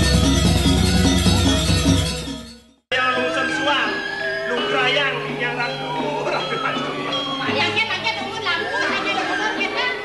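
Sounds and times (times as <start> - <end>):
music with steady held notes: 0.0 - 10.0
several voices: 2.9 - 10.0.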